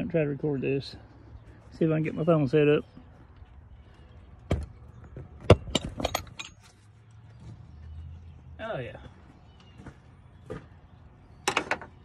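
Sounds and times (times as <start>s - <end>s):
small clinks: 5.7s - 6.7s.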